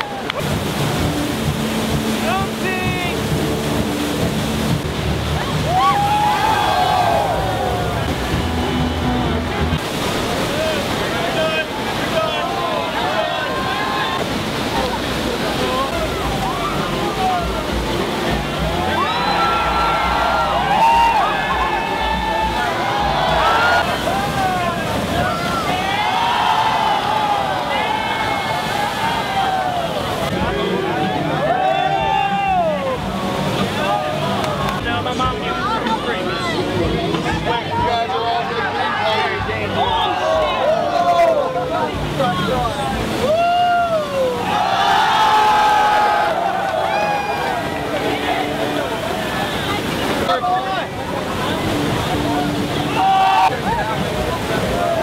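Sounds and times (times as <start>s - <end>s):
people whooping and shouting: 0.0s - 0.5s, 5.5s - 8.2s, 12.2s - 14.2s, 18.6s - 30.2s, 31.2s - 33.1s, 38.8s - 41.9s, 43.1s - 48.7s, 52.8s - 55.0s
whitewater roaring: 0.0s - 55.0s.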